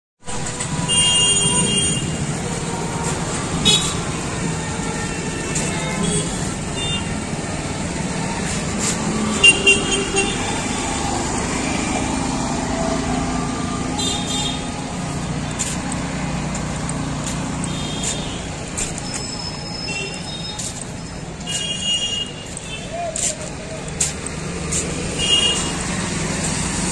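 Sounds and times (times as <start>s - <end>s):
road traffic: 0.2s - 26.9s
vehicle horn beeps: 0.3s - 4.2s, 4.8s - 7.2s, 9.3s - 11.0s, 13.9s - 15.2s, 17.6s - 23.0s, 25.1s - 26.0s.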